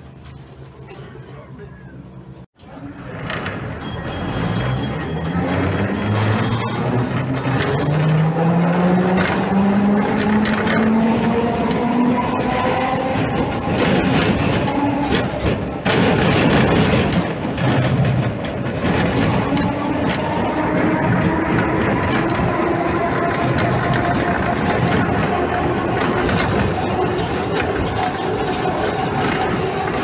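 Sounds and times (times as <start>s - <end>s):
tram motors whining: 0.0s - 30.0s
steel wheels clattering on rails: 2.6s - 30.0s.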